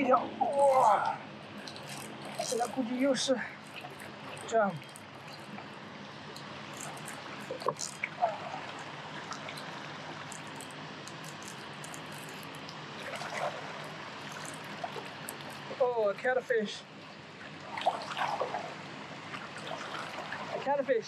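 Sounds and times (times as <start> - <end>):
flowing river water: 0.0 - 21.0.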